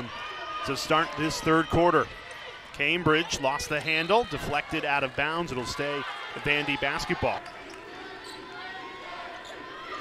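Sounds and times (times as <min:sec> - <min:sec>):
crowd voices: 0:00.0 - 0:10.0.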